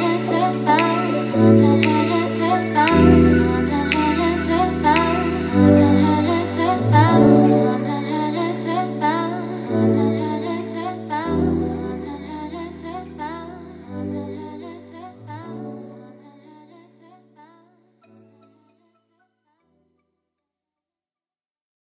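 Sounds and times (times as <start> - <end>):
mellow tropical house song: 0.0 - 16.7.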